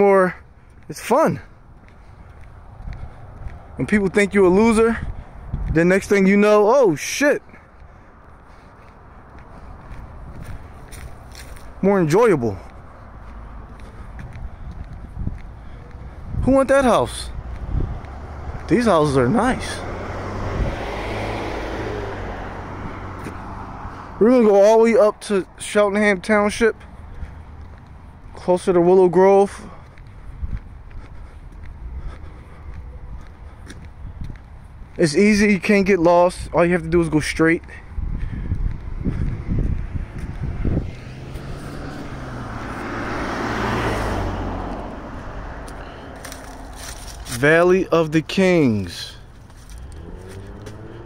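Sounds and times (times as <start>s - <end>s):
tyre road noise: 0.0s - 51.0s
car engine rumble: 7.4s - 28.8s, 35.7s - 51.0s.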